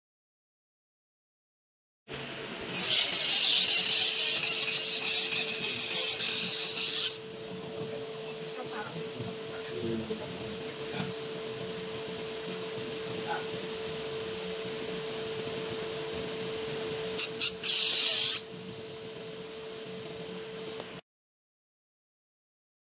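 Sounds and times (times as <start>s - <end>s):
machine hum: 2.1s - 21.0s
laser marking hiss on metal: 2.7s - 9.0s, 17.1s - 20.0s.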